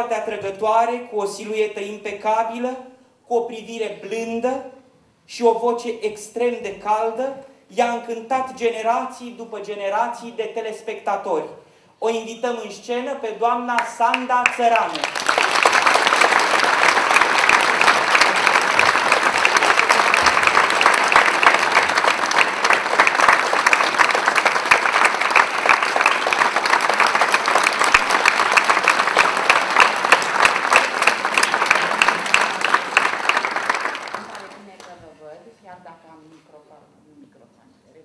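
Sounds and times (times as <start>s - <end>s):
audience applauding: 13.8s - 34.9s.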